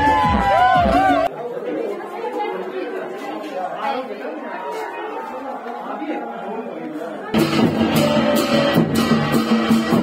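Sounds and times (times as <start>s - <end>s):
loud music: 0.0s - 1.3s, 7.4s - 10.0s
people chattering: 0.0s - 10.0s.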